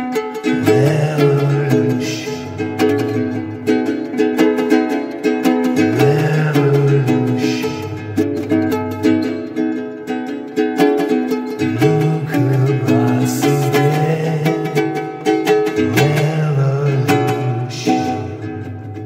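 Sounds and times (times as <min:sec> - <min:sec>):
ukulele strumming chords: 0:00.0 - 0:19.0.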